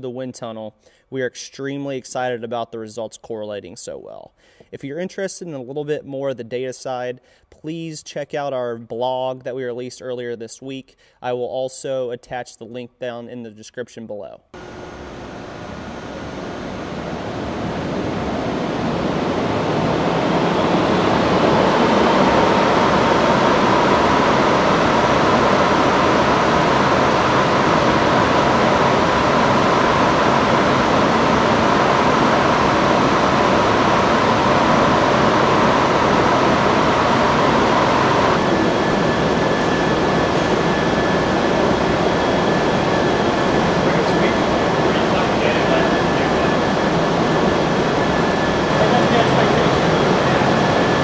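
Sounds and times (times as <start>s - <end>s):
faint hum: 14.6s - 51.0s
wind tunnel airflow and fan: 14.6s - 51.0s.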